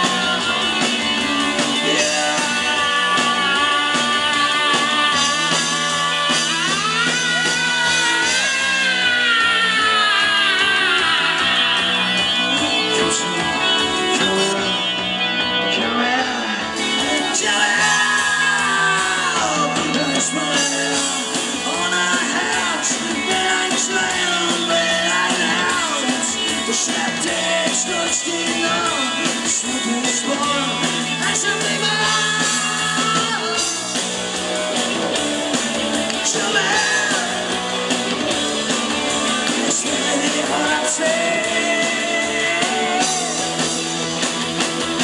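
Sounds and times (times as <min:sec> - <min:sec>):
steady drum beat: 0:00.0 - 0:15.2, 0:16.6 - 0:45.0
electric guitars holding notes: 0:00.0 - 0:45.0
live rock band playing: 0:00.0 - 0:45.0.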